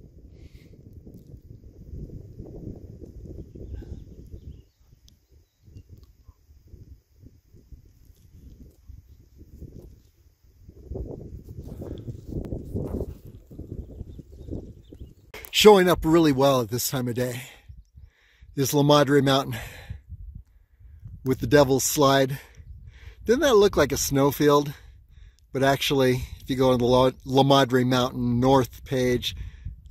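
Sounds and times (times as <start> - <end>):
wind buffeting microphone: 0.0 - 27.4, 28.1 - 29.9.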